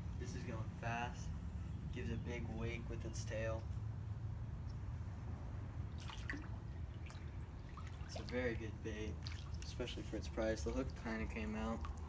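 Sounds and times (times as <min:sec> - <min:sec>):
steady low rumble: 0:00.0 - 0:12.0
water splashing and dripping: 0:05.9 - 0:12.0.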